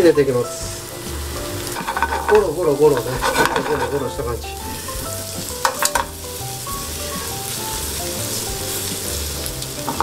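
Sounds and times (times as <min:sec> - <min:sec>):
food sizzling in frying pan: 0:00.0 - 0:10.0
metal tongs in pan: 0:01.2 - 0:04.8, 0:05.4 - 0:06.3, 0:08.3 - 0:10.0.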